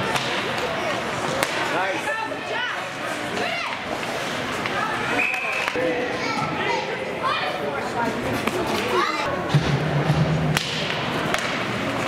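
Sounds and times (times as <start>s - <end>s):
hockey stick hitting puck: 0.0s - 0.7s, 1.3s - 1.8s, 9.5s - 12.0s
arena noise: 0.0s - 12.0s.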